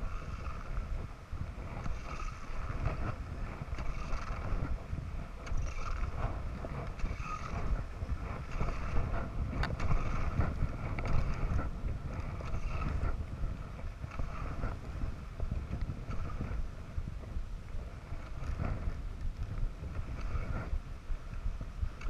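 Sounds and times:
skis scraping on snow: 0:00.0 - 0:22.0
wind buffeting microphone: 0:00.0 - 0:22.0.

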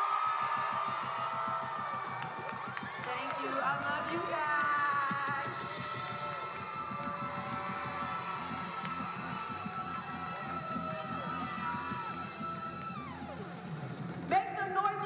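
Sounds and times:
pulsing bass line: 0:00.0 - 0:15.0.

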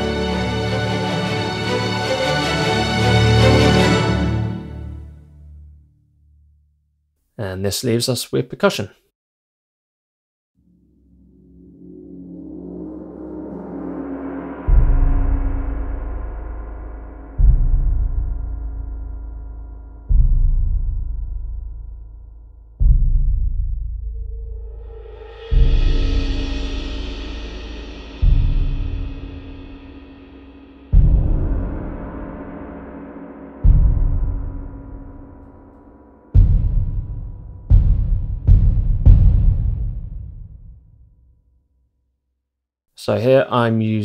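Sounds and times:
rolled gong shimmering: 0:10.6 - 0:20.2, 0:24.6 - 0:37.6
bass drum hit: 0:11.2 - 0:41.2.

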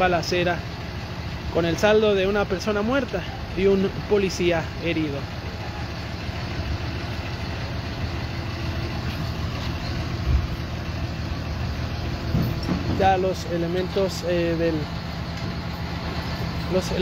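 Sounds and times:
truck engine idling: 0:00.0 - 0:17.0.

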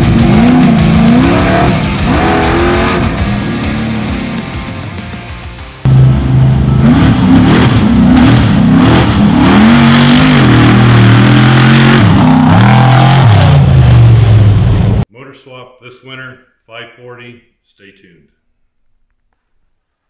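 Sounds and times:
truck engine revving: 0:00.0 - 0:05.1, 0:05.8 - 0:15.0.

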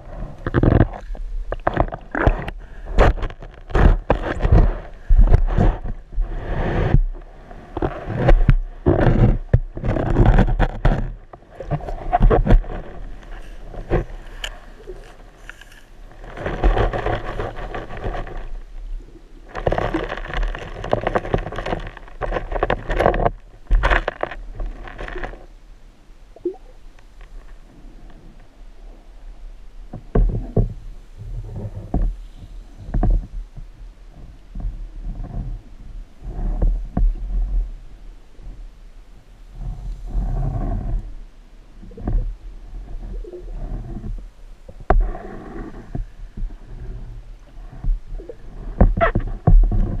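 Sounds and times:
low underwater rumble: 0:00.0 - 0:50.0
sand scoop scraping and clicking: 0:00.1 - 0:18.6.

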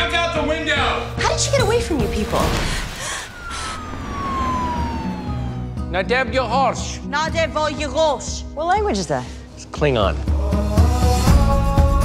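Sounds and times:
background music: 0:00.0 - 0:12.0
police siren wailing: 0:02.9 - 0:06.8.

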